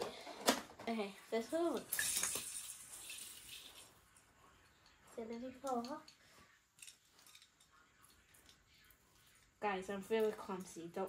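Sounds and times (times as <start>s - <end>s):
string lights rustling and clicking: 1.7s - 10.9s.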